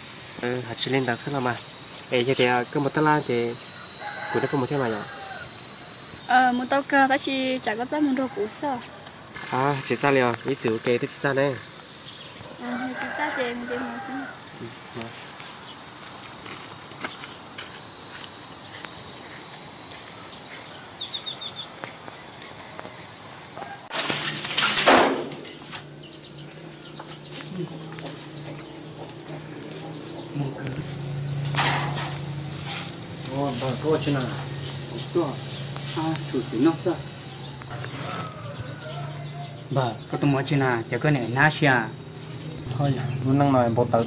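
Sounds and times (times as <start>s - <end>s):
high-pitched insect drone: 0.0s - 44.0s
rooster crowing: 3.0s - 6.2s, 7.9s - 9.5s, 11.6s - 16.4s, 23.6s - 24.0s, 36.6s - 40.0s
high chirps: 9.2s - 12.7s.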